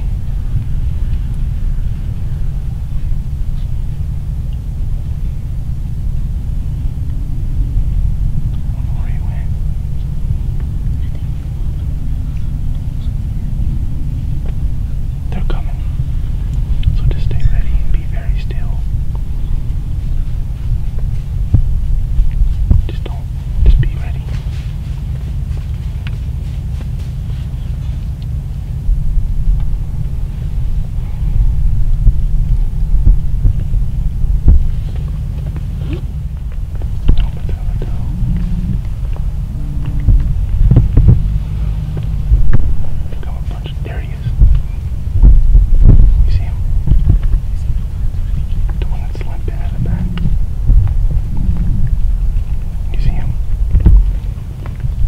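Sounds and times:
low throbbing rumble: 0.0s - 55.0s
faint hushed whispering: 8.6s - 10.1s, 15.2s - 19.0s, 22.6s - 24.6s, 30.4s - 31.9s, 36.9s - 39.1s, 43.0s - 44.8s, 46.0s - 50.5s, 51.2s - 53.5s.

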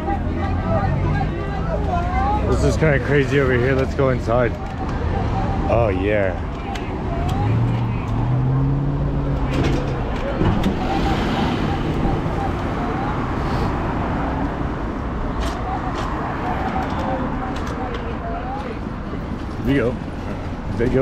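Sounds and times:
cars driving past: 0.0s - 21.0s
crowd chatter: 0.0s - 21.0s.

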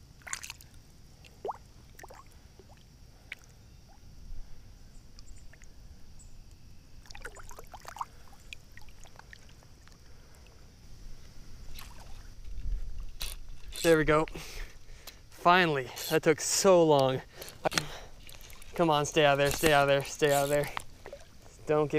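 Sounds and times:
water sloshing and splashing: 0.1s - 3.5s, 7.0s - 10.0s, 11.7s - 12.3s, 17.7s - 21.7s.

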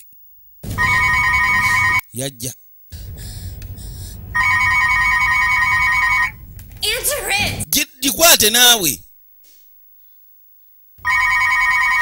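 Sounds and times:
telephone ringing: 0.8s - 2.0s, 4.4s - 6.4s, 11.0s - 12.0s
low rumble: 2.9s - 7.7s.

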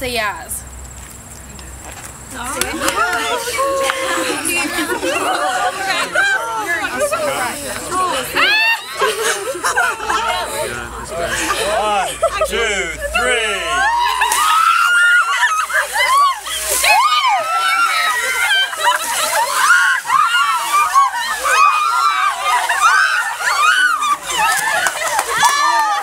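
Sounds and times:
water splashing on people: 2.3s - 26.0s
people shrieking and yelling: 2.6s - 26.0s.

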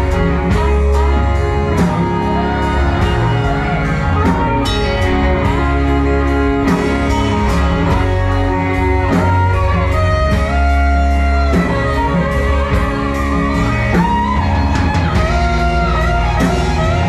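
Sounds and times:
electric bass: 0.0s - 17.0s
electric guitar: 0.0s - 17.0s
fiddle: 0.0s - 17.0s
steady drum beat: 0.0s - 17.0s.

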